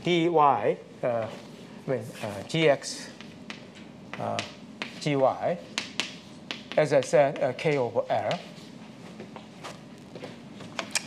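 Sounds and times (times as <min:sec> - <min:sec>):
chalk tapping on blackboard: 0:03.1 - 0:08.6.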